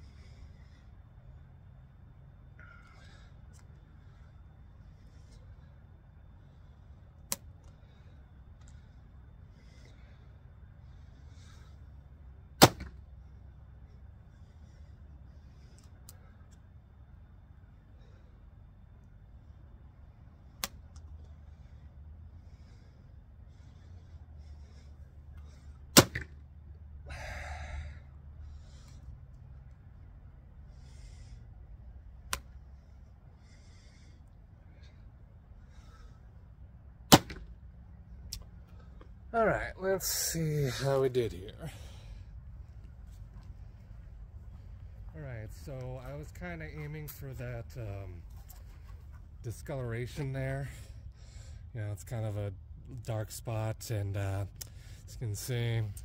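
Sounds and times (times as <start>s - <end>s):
bow string snapping: 32.3s - 32.5s.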